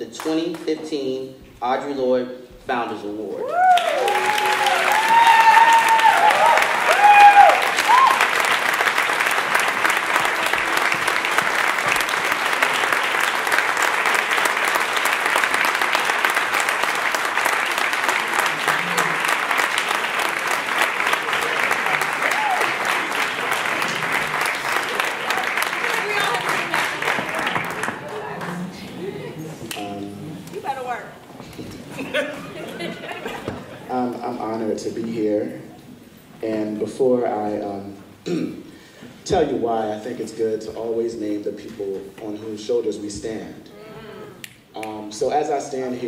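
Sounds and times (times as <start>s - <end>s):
shrill whoops and cheers: 3.4s - 8.5s, 22.2s - 23.0s
audience applauding: 3.5s - 30.0s, 31.7s - 34.1s.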